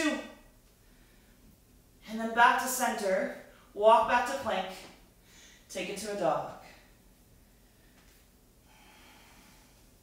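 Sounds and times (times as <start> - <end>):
faint breath: 5.2 - 5.7, 6.7 - 10.0.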